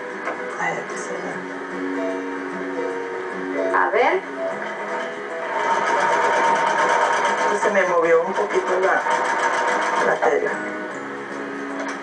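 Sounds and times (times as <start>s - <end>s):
background music: 0.0s - 12.0s
sewing machine stitching: 4.6s - 10.6s.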